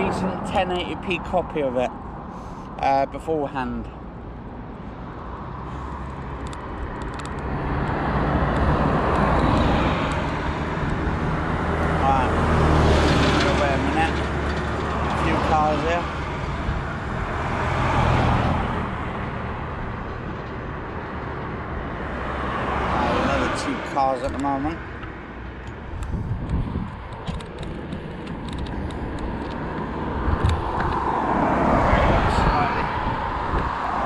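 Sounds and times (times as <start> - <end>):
vehicles passing by: 0.0 - 34.0
small lorry passing: 7.4 - 25.4.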